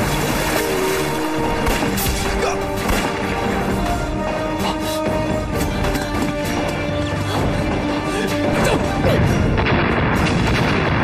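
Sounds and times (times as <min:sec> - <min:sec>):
dramatic background music: 0:00.0 - 0:11.0
explosions booming: 0:09.2 - 0:11.0.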